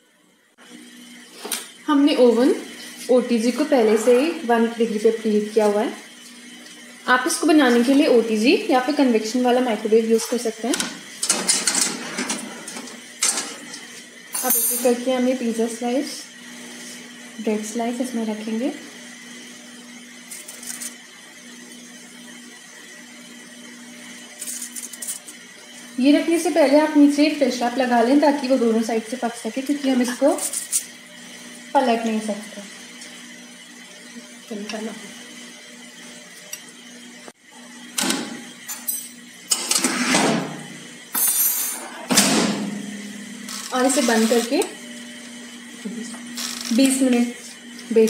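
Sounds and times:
metal tray scraping on wire rack: 0:11.2 - 0:13.8, 0:39.6 - 0:40.6.

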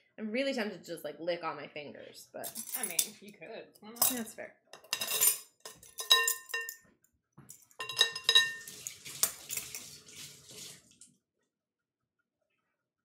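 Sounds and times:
dishes clinking: 0:04.0 - 0:06.8, 0:07.5 - 0:10.0
running water splashing: 0:07.8 - 0:11.1.

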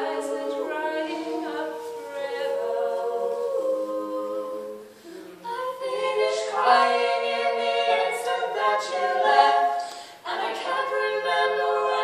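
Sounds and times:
women singing a cappella harmony: 0:00.0 - 0:12.0.

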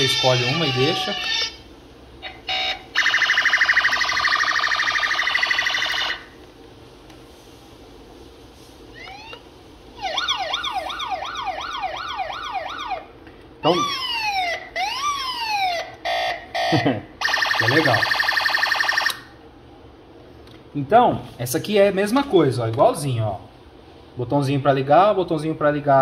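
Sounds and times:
toy electronic siren wailing: 0:00.0 - 0:01.6, 0:02.2 - 0:06.3, 0:09.0 - 0:09.4, 0:10.0 - 0:13.0, 0:13.7 - 0:19.2.

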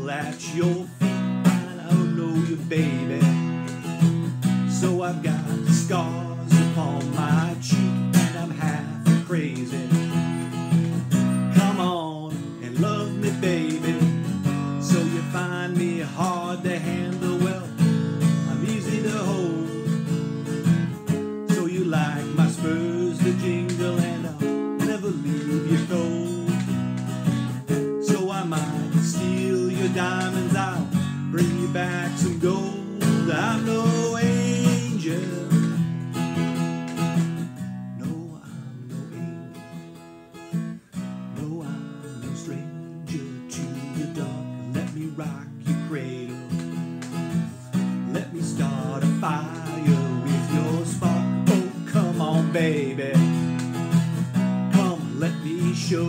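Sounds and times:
man singing: 0:00.0 - 0:36.1, 0:37.1 - 0:39.8, 0:40.8 - 0:56.0
acoustic guitar strumming: 0:00.0 - 0:56.0.

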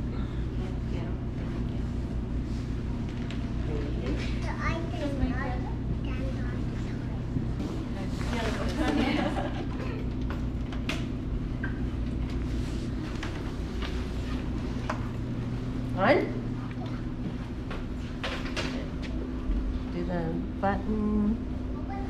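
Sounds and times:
low machinery hum: 0:00.0 - 0:22.0.

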